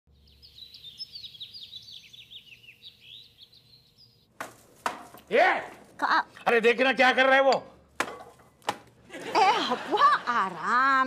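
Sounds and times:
birds chirping: 0.1s - 4.4s.

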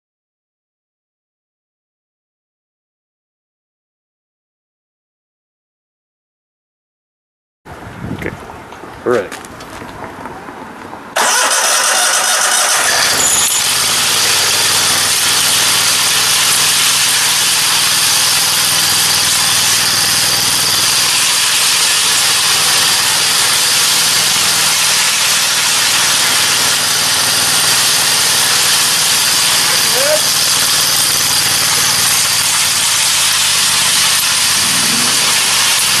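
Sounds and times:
engine running loudly: 11.2s - 36.0s.

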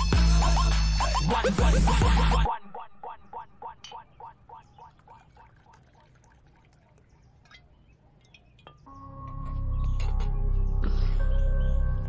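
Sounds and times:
liquor glugging from bottle: 4.7s - 8.9s
film music with deep bass: 8.9s - 12.0s.

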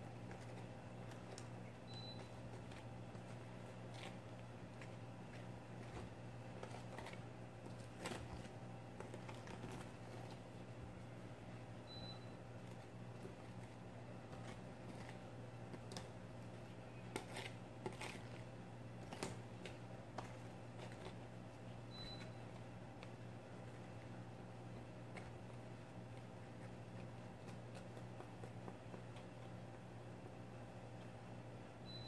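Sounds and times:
steady low hum: 0.0s - 32.0s.

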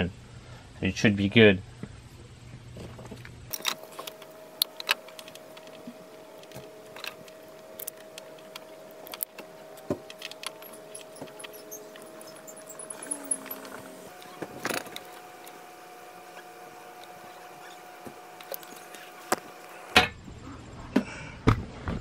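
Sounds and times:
faint steady hum: 0.0s - 22.0s
clicks and clinks of wire handling: 3.5s - 14.0s.

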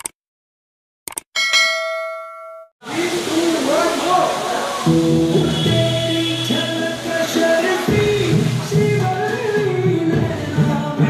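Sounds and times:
notification bell ding: 1.4s - 2.7s
background voices: 2.8s - 11.0s.

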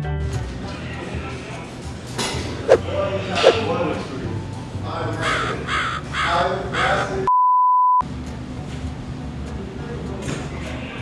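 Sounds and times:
crow cawing: 5.2s - 7.1s.

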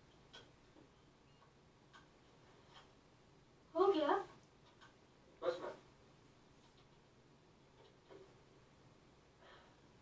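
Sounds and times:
person asking a question: 5.4s - 5.8s.

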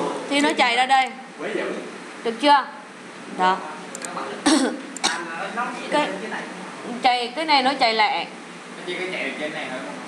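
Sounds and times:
woman speaking: 0.3s - 1.3s, 2.2s - 3.8s, 6.9s - 8.4s
woman coughing: 4.4s - 5.3s.

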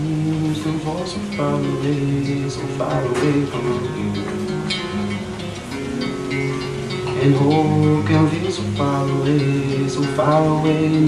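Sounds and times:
person singing: 0.0s - 5.2s, 6.8s - 11.0s
acoustic guitar strumming: 0.0s - 11.0s.

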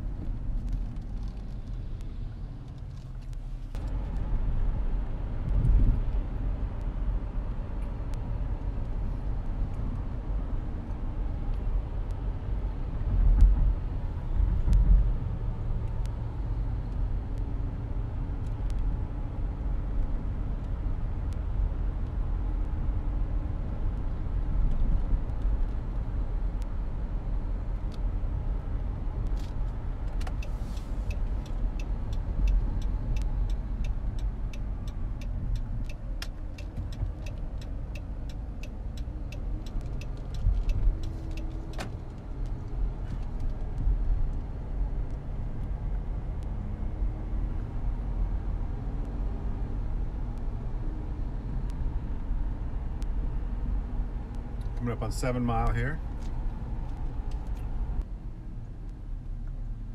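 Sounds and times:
car engine and tyres rumbling: 0.0s - 59.9s
turn signal ticking: 29.1s - 49.4s.

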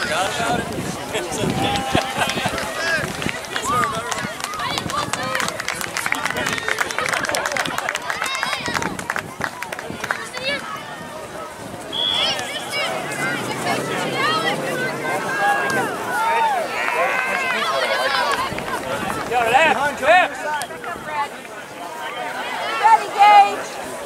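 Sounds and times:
overlapping voices calling out: 0.0s - 24.0s.

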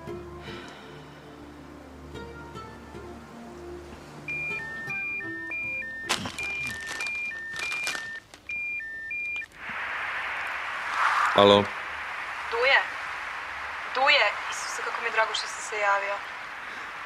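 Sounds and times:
two-tone phone ringtone: 4.3s - 9.4s
rustling: 6.1s - 9.8s.

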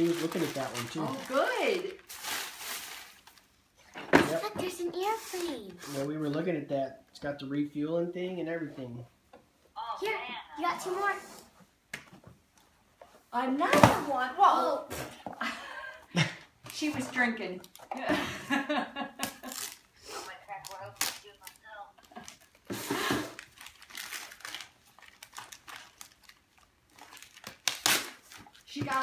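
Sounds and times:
wrapping paper crinkling: 0.0s - 3.5s, 19.4s - 22.7s, 23.3s - 29.0s
person speaking: 4.2s - 6.3s.

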